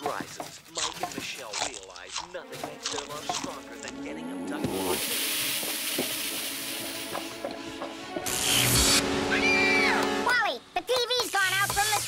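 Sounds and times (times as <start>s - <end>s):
cartoon background music: 0.8s - 12.0s
hiss: 4.8s - 7.3s.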